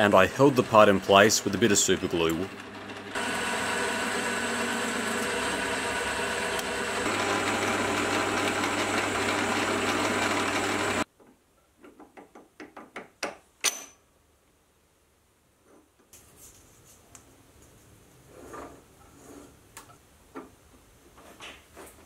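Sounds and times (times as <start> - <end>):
metal lathe gear whine: 0.0 - 11.0.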